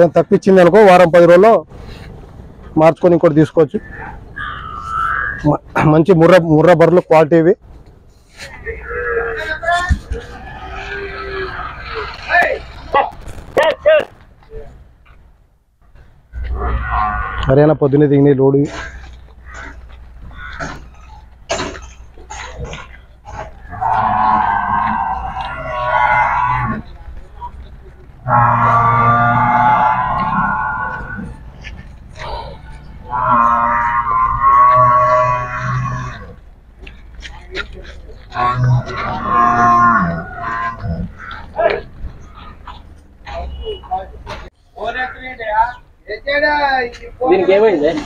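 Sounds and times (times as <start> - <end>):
buffalo lowing: 3.8 - 5.7, 8.8 - 13.5, 15.8 - 17.5, 18.6 - 44.4.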